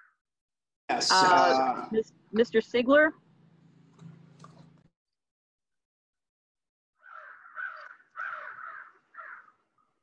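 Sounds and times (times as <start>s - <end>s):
crow cawing: 7.0s - 9.9s.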